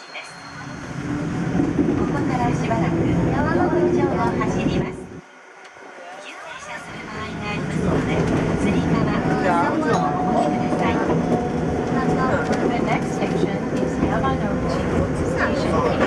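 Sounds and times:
tram running on track: 0.0s - 16.0s.

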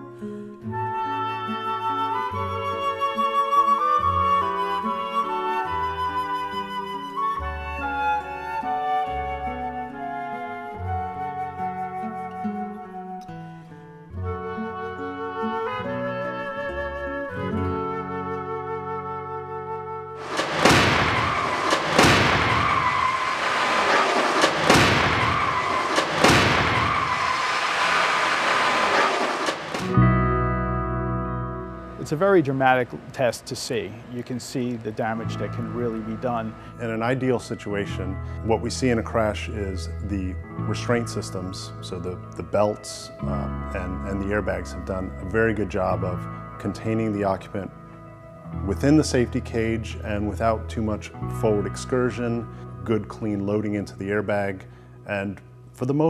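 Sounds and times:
flute-led instrumental music: 0.0s - 27.7s, 28.6s - 32.6s, 34.6s - 55.3s
car crashing into barrier: 20.2s - 30.0s.

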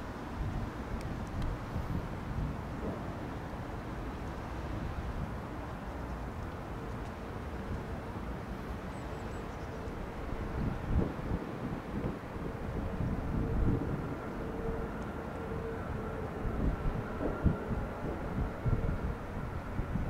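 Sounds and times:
wind rumble on microphone: 0.0s - 20.0s
jet engines whining: 12.2s - 20.0s.

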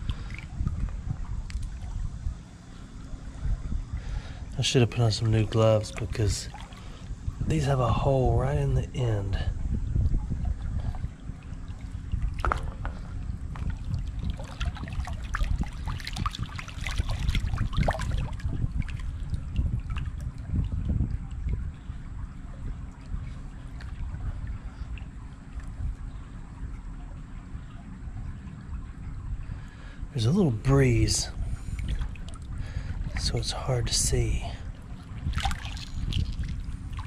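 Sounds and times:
wind rumble on microphone: 0.0s - 37.0s
running water splashing: 4.0s - 8.0s, 10.3s - 21.5s, 30.2s - 37.0s
stones knocking together: 12.4s - 13.0s.

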